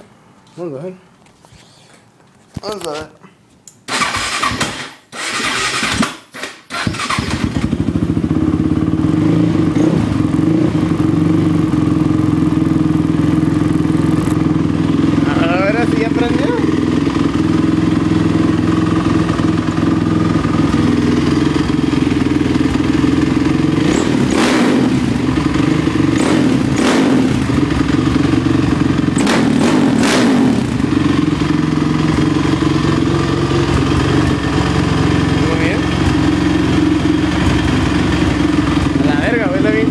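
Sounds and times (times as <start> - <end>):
engine cranking: 3.9 - 7.8
quad engine running: 3.9 - 39.9.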